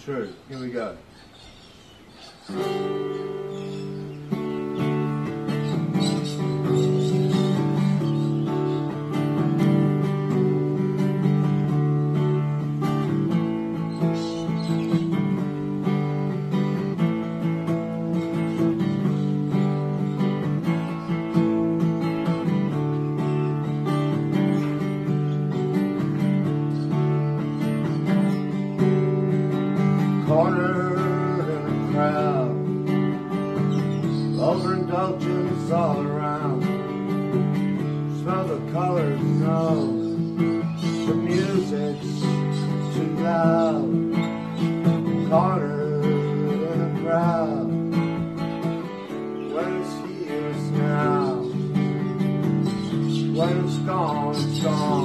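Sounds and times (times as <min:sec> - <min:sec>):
acoustic guitar chords: 0:00.0 - 0:55.0.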